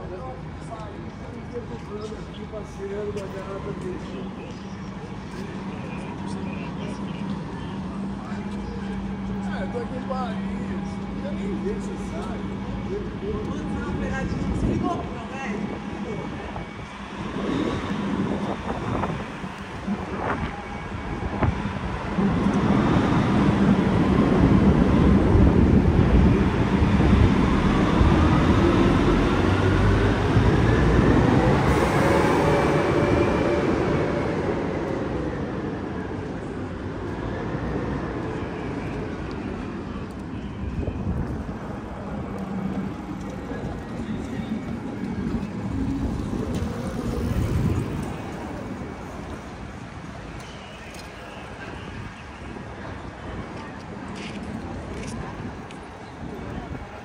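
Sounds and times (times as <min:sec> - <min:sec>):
steady traffic rumble: 0:00.0 - 0:57.0.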